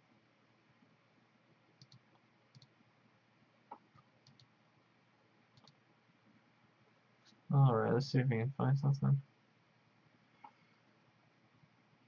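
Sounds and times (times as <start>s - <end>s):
faint computer mouse clicks: 1.8s - 2.7s, 3.7s - 4.5s, 5.6s - 5.8s.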